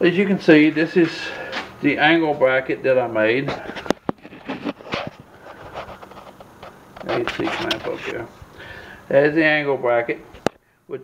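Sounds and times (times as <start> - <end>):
soft handling rustles: 3.4 - 8.5.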